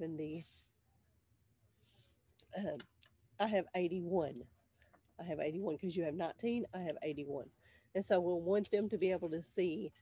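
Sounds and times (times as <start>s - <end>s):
soft breath: 1.7s - 2.2s, 7.6s - 8.0s.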